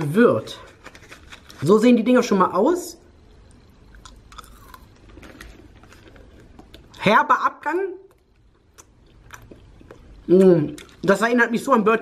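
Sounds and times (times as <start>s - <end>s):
chewing gum: 8.1s - 11.1s.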